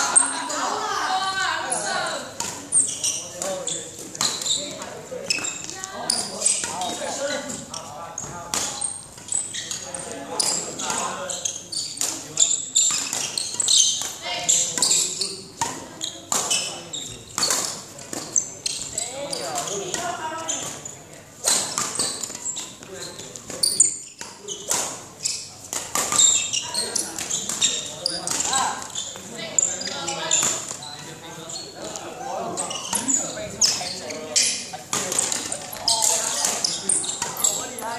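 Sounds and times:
voices talking: 0.0 - 37.9.

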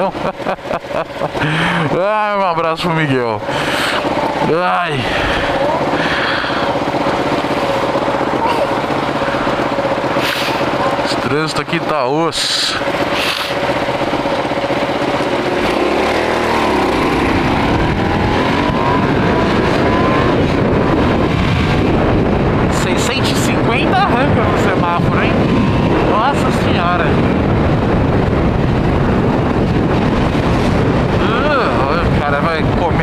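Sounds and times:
motorcycle engine idling and revving: 0.0 - 33.0
wind noise on microphone: 12.7 - 33.0.

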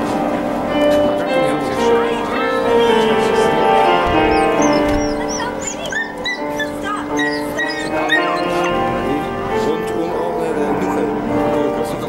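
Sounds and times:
background music with held notes: 0.0 - 12.0
dog whimpering: 1.9 - 9.3.

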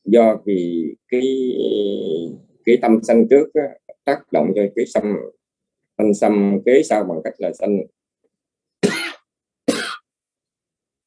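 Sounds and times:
person coughing: 8.8 - 10.1.

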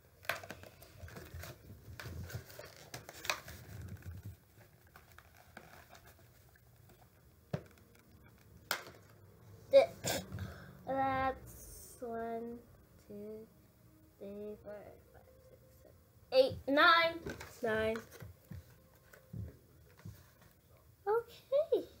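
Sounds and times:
cardboard box and plastic crinkling: 0.2 - 9.1.

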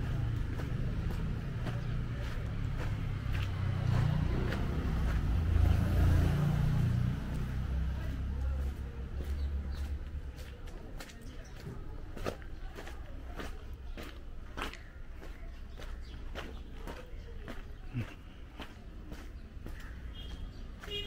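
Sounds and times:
footsteps on wet gravel: 0.0 - 21.0.

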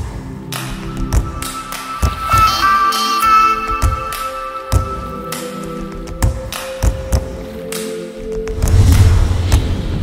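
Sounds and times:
music with held chords: 0.4 - 8.4
percussive hits: 0.6 - 7.3.

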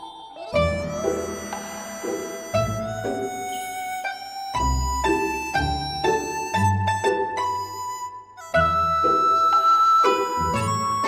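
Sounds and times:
orchestral music with folk strings: 0.0 - 11.0.

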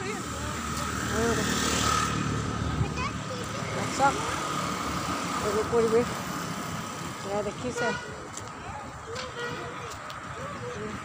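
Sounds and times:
street traffic: 0.0 - 11.0
motor vehicle passing close: 0.2 - 7.6.

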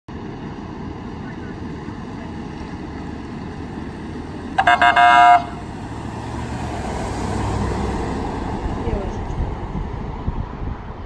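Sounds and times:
emergency vehicles rumbling: 0.1 - 10.0
wind on microphone: 7.7 - 11.0.

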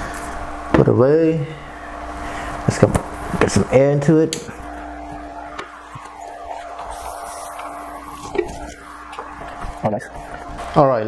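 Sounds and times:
electric air pump humming: 0.0 - 11.0.

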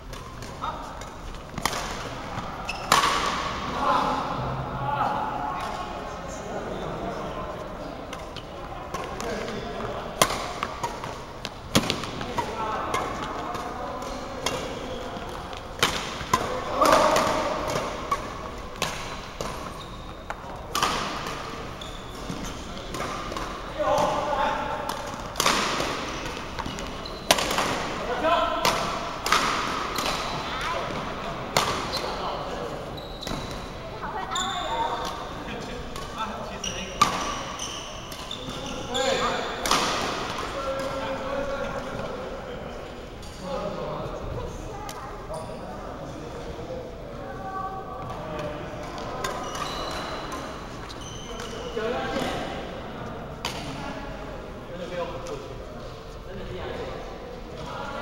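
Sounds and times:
rackets striking shuttlecock: 0.1 - 3.6, 15.3 - 21.4, 24.8 - 28.0, 28.6 - 32.1.

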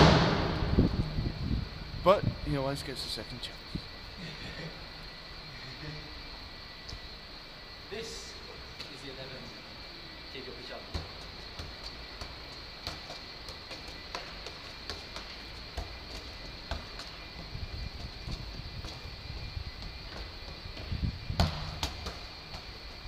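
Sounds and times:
heavier ball thud: 0.0 - 1.9, 21.3 - 22.3
steady high-pitched hum: 0.0 - 23.0.

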